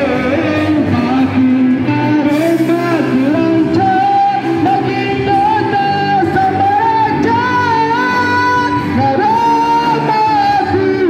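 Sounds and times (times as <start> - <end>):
bass: 0.0 - 11.0
drums: 0.0 - 11.0
electric guitars: 0.0 - 11.0
man singing long notes: 0.0 - 11.0.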